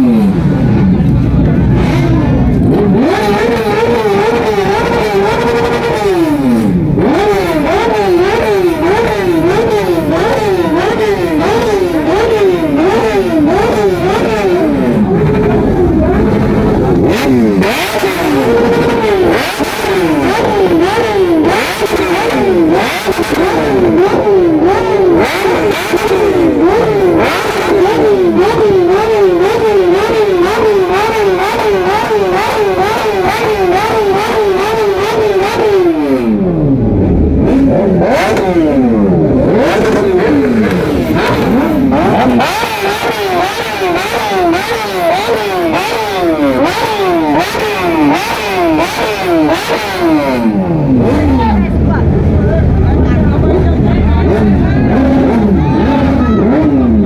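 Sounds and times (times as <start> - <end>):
motorcycle engines revving: 0.0 - 57.0.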